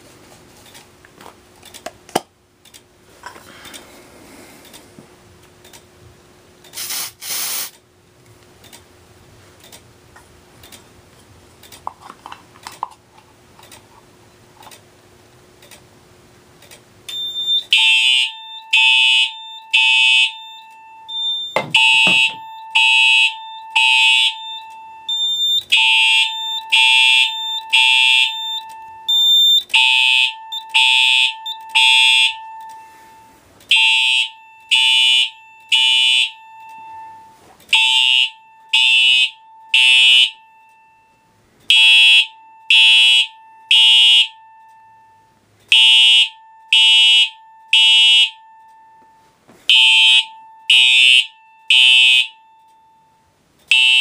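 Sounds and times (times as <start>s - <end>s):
fire alarm horn and chime: 17.1s - 54.0s.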